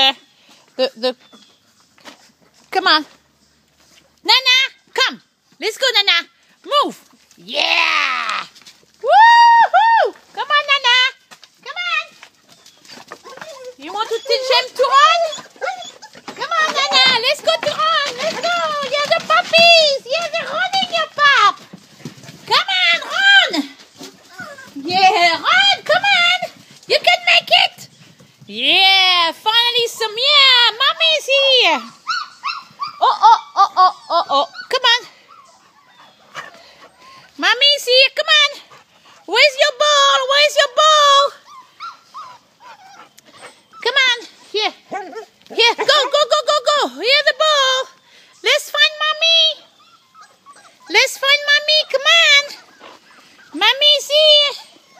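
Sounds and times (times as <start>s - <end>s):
puppies whining: 12.1s - 21.2s, 23.9s - 26.1s, 29.8s - 37.4s, 41.3s - 46.3s, 48.2s - 54.9s.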